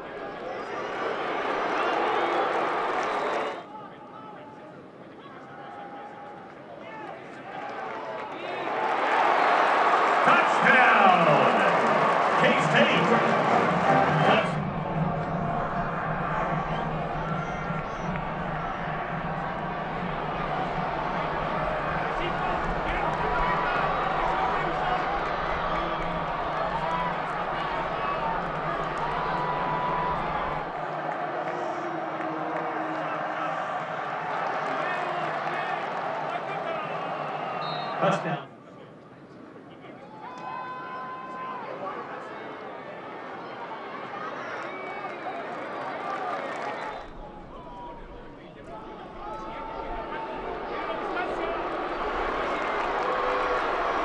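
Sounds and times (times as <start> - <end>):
stadium crowd noise: 0.0 - 54.0.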